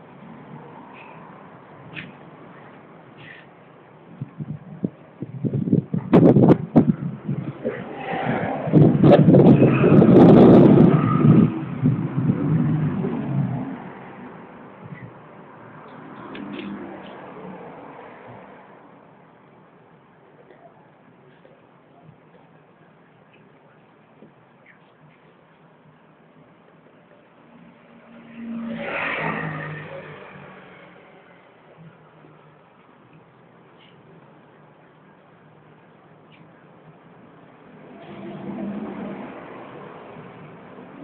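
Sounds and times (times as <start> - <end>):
road vehicle passing by: 4.8 - 19.3, 27.4 - 32.8, 37.5 - 41.0.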